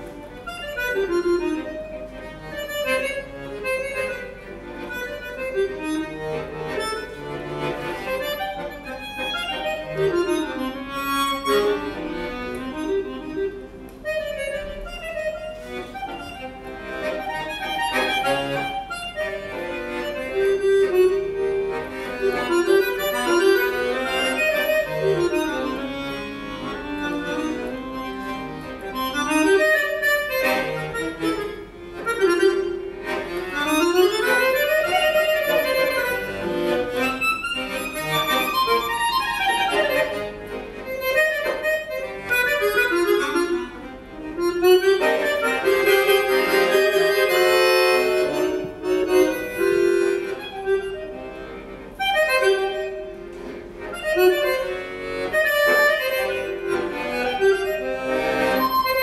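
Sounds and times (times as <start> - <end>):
button accordion playing: 0.0 - 59.0.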